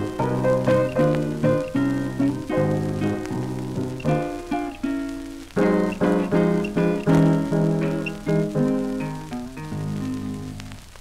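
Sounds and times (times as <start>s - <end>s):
piano and guitar blues chords: 0.0s - 11.0s
record surface hiss and crackle: 0.0s - 11.0s.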